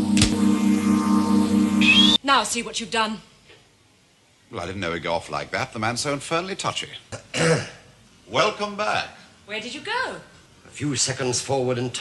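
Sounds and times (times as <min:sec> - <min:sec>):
electronic pulsing hum: 0:00.0 - 0:02.2
rising electronic whine: 0:00.0 - 0:02.2.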